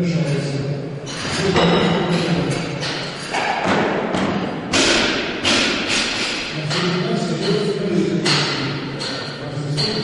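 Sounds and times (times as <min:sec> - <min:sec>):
heavy thumps echoing in a hall: 0:00.0 - 0:10.0.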